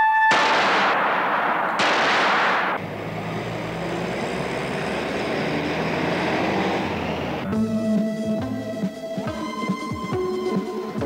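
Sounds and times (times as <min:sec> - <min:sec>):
revolver shot: 0:00.3 - 0:02.8.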